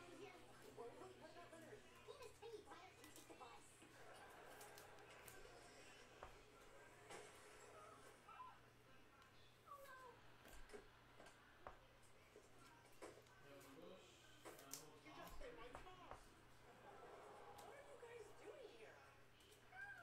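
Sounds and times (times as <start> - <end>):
trading cards being handled: 4.2 - 6.4.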